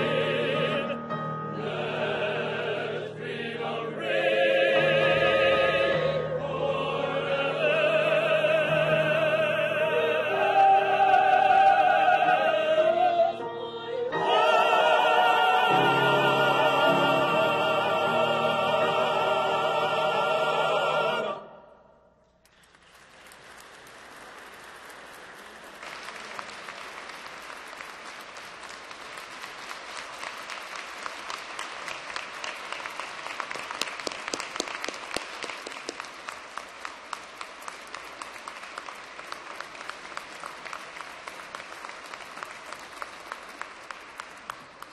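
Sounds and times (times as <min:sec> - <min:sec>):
audience applauding: 0:22.4 - 0:44.9.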